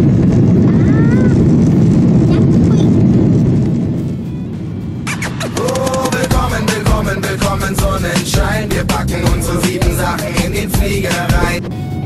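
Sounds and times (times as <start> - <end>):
jet engines rumbling: 0.0 - 12.0
music with a beat and voice: 5.1 - 11.6.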